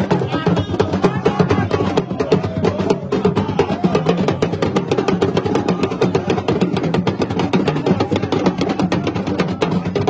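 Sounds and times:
drummers chanting: 0:00.0 - 0:10.0
talking drums and hand percussion: 0:00.0 - 0:10.0.

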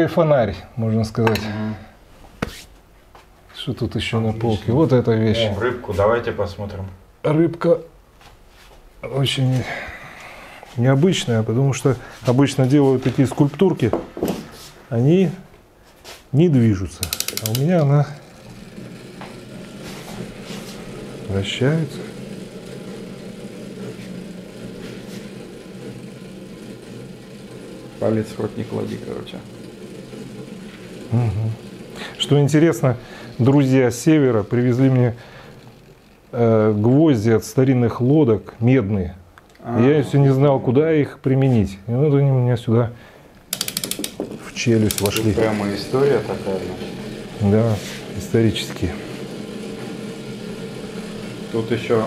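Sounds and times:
small electric motor humming: 0:16.7 - 0:38.1, 0:43.4 - 0:52.0.

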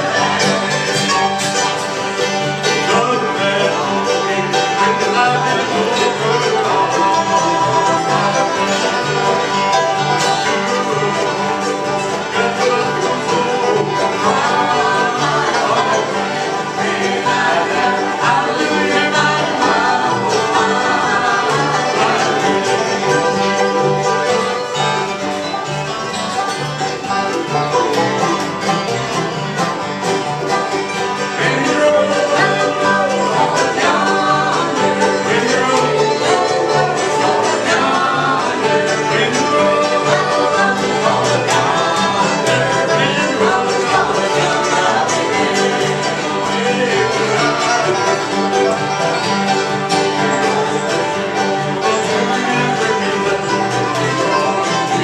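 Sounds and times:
banjo rolls: 0:00.0 - 0:55.0
mandolin: 0:00.0 - 0:55.0
strummed acoustic guitars: 0:00.0 - 0:55.0
upright bass: 0:00.0 - 0:55.0.

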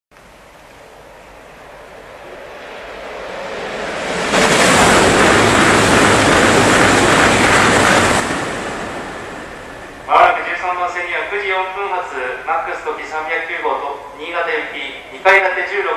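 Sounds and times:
high-speed train passing: 0:00.2 - 0:15.9.

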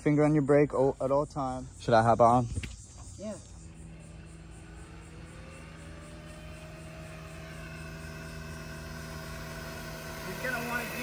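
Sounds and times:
electric motor whining: 0:02.3 - 0:11.0.

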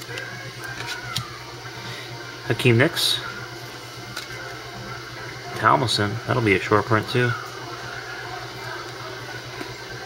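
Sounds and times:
trading cards being handled: 0:00.0 - 0:01.4
low background hum: 0:00.0 - 0:10.0.

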